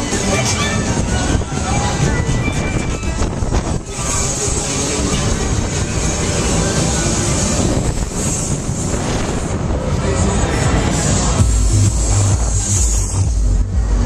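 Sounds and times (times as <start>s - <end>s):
loud fairground music: 0.0s - 14.0s
wind rushing over microphone: 0.0s - 14.0s.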